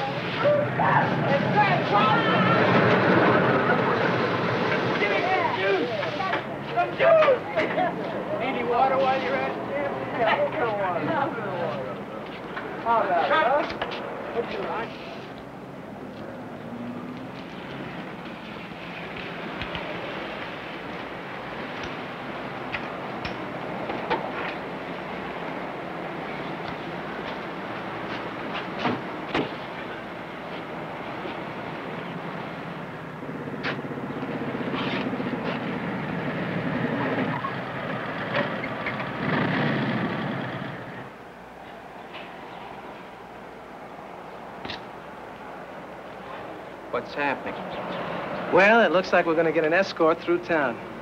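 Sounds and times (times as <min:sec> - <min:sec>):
motorcycle engines rumbling: 0:00.0 - 0:51.0.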